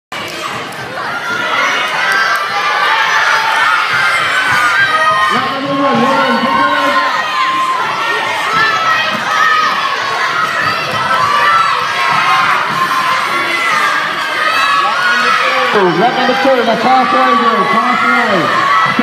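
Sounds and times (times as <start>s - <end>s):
children shouting and cheering: 0.1s - 19.0s.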